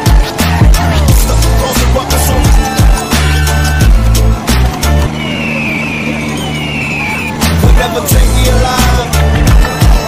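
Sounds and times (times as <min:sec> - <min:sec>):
tractor diesel engine running: 0:00.0 - 0:10.0
faint high whistle: 0:05.1 - 0:07.6.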